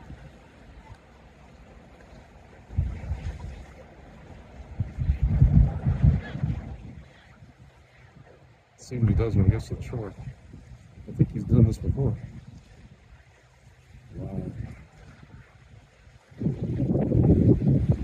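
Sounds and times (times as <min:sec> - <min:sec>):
wind buffeting microphone: 0:02.5 - 0:18.0.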